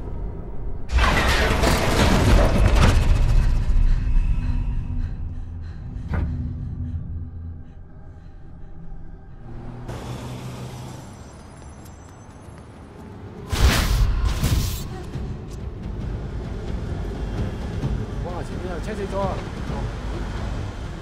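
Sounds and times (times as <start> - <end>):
horror film music: 0.0 - 21.0
voice: 18.2 - 19.8.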